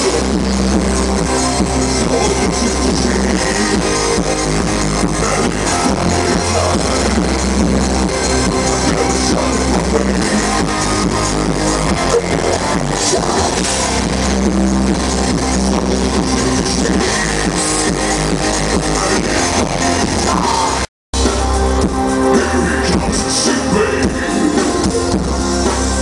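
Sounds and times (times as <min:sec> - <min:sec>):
distorted electric guitar: 0:00.0 - 0:26.0
electronic keyboards: 0:00.0 - 0:26.0
industrial metal band playing: 0:00.0 - 0:26.0
low drum and bass pulse: 0:00.0 - 0:26.0.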